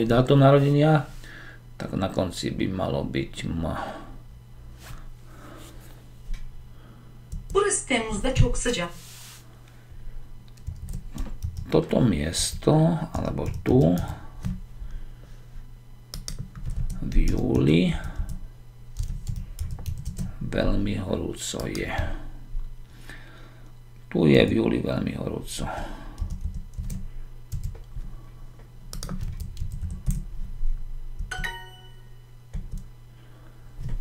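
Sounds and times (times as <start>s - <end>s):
computer keyboard typing: 10.6s - 11.8s, 13.2s - 14.6s, 16.1s - 18.4s, 19.0s - 20.3s, 26.2s - 27.8s, 28.9s - 30.2s.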